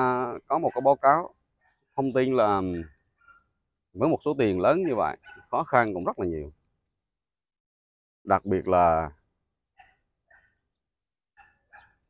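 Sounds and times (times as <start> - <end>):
faint animal calls: 0.0 - 3.8, 4.4 - 5.8, 9.7 - 12.0.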